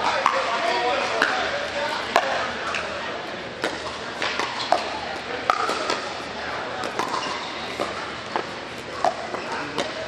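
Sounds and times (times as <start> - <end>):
murmur of voices: 0.0 - 10.0
paddles hitting plastic ball: 3.6 - 6.2, 6.8 - 10.0.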